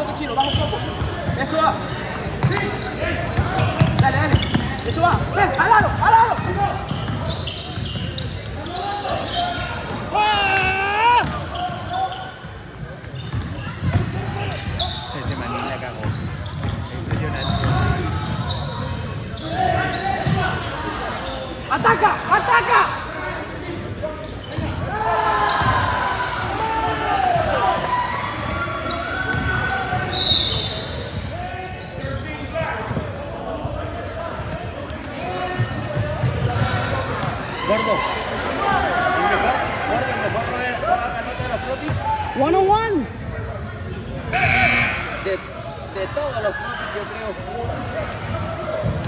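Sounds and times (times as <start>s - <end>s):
sneakers squeaking: 0.0s - 26.0s, 27.1s - 38.0s, 41.2s - 42.6s, 43.3s - 49.0s
people calling out: 44.3s - 45.5s
high whistle: 44.4s - 45.3s.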